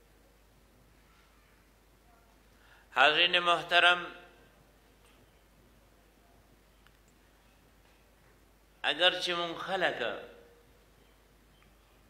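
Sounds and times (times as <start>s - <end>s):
man speaking with echo: 2.9s - 4.4s, 8.8s - 10.5s.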